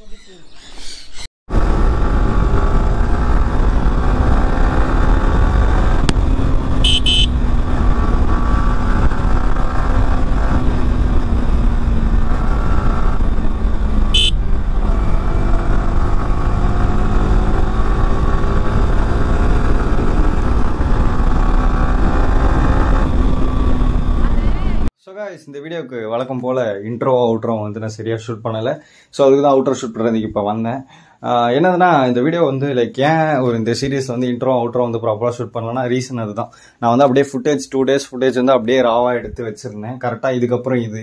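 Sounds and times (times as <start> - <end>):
motorcycle engine cruising: 1.5 - 24.9
short high-pitched horn toots: 6.8 - 7.4, 14.1 - 14.4.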